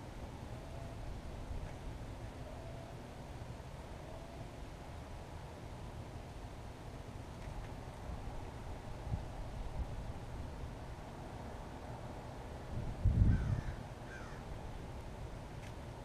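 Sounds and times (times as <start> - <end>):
low outdoor rumble: 0.0 - 16.0
bird calling: 13.3 - 14.5.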